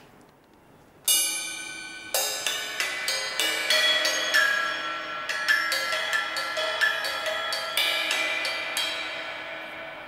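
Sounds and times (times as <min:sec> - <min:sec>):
drumsticks hitting cymbals: 0:01.1 - 0:10.0.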